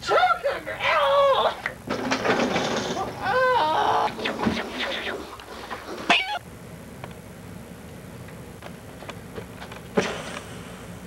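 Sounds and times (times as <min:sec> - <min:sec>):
person shrieking: 0:03.2 - 0:04.2
person's wavering wordless cries: 0:03.2 - 0:04.2.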